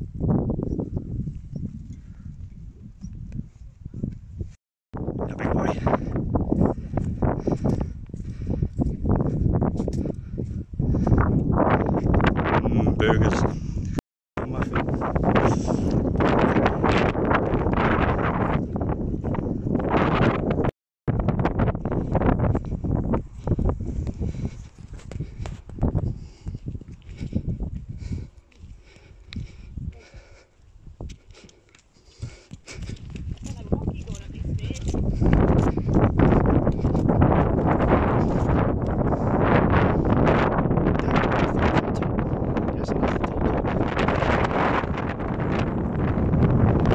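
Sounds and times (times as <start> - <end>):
wind buffeting microphone: 0.0 - 46.9.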